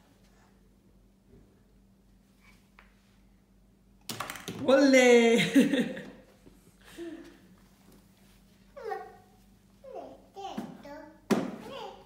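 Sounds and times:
toddler high-pitched vocal sound: 8.8s - 12.0s.

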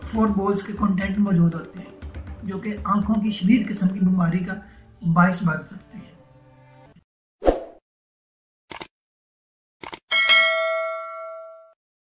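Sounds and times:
bright bell ding: 10.1s - 11.8s.

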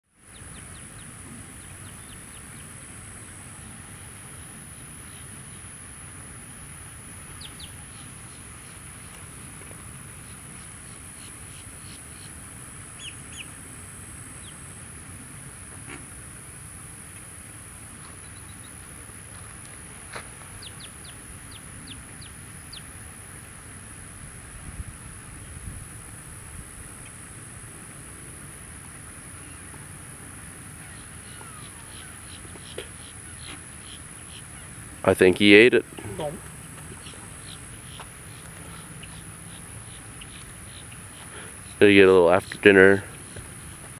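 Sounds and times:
steady background hiss: 0.0s - 43.9s
distant bird calls: 0.2s - 5.8s, 7.0s - 16.2s, 17.0s - 23.0s, 29.2s - 43.9s.

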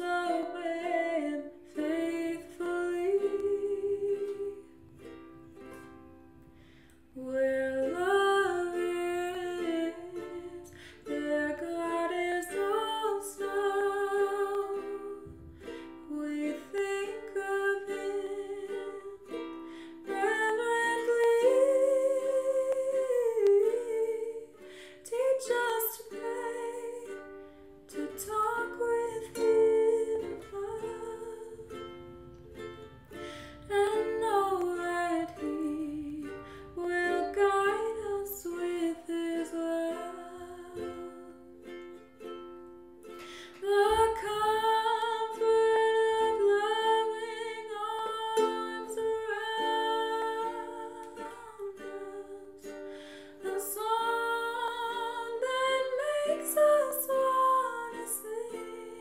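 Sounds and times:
woman singing: 0.0s - 6.0s, 7.1s - 41.9s, 43.5s - 59.0s
ukulele strumming: 0.0s - 59.0s.

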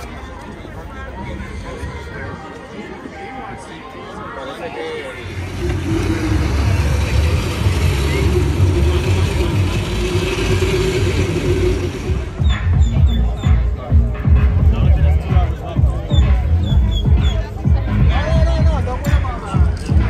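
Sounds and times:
crowd chatter: 0.0s - 20.0s
karts motor drone: 4.8s - 13.3s.

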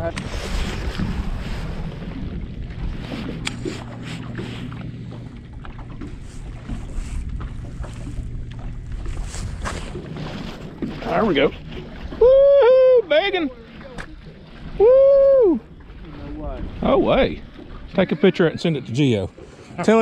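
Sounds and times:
wind on microphone: 0.0s - 4.8s, 6.0s - 13.0s
water lapping at boat hull: 0.0s - 20.0s.

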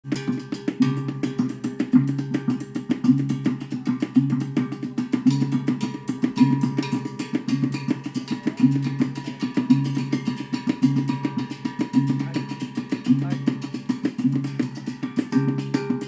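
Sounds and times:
fast drumming: 0.0s - 16.0s
low drum pattern: 0.0s - 16.0s.

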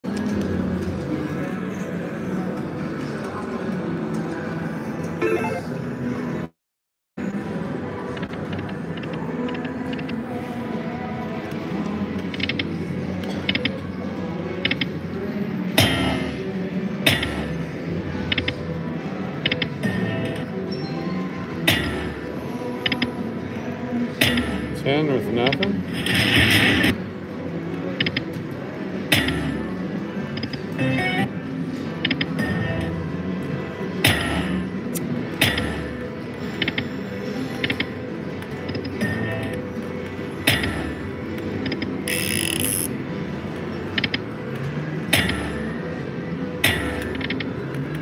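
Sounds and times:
casino background noise: 0.1s - 6.5s, 7.2s - 48.0s
slot machine game music: 5.2s - 6.0s, 30.8s - 31.4s.

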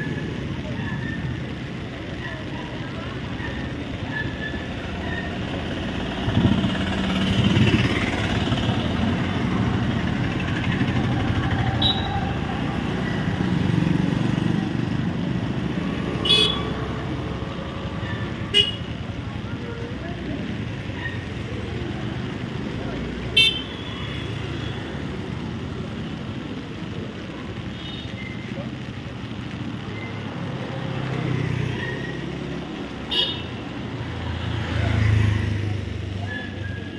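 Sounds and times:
crowd voices: 0.0s - 36.9s
traffic on wet road: 0.0s - 36.9s.

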